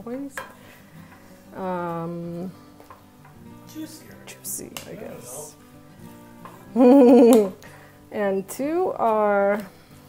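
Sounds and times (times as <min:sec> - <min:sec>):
faint background music: 0:00.0 - 0:10.0
person laughing: 0:06.7 - 0:07.6.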